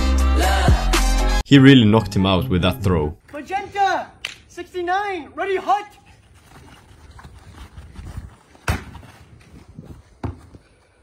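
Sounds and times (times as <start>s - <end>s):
players scuffling on grass: 5.6s - 11.0s
sharp smack of impact: 8.6s - 9.0s.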